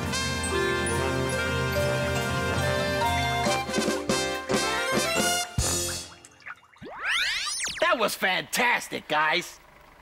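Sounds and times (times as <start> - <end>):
cartoon whistling sweep effect: 5.6 - 7.9.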